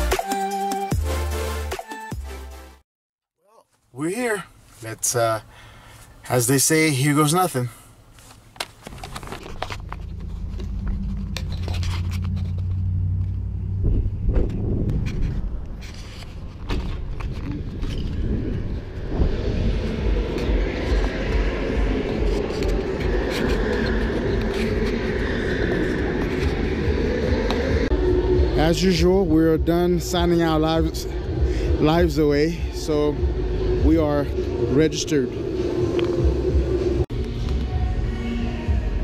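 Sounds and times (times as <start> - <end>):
camera handling noise: 8.1 - 10.3
go-kart hall din: 18.2 - 37.0.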